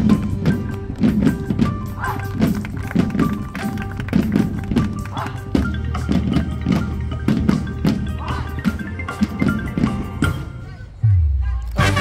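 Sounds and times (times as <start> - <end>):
mallet instruments and drums: 0.0 - 12.0
marching band playing: 0.0 - 12.0.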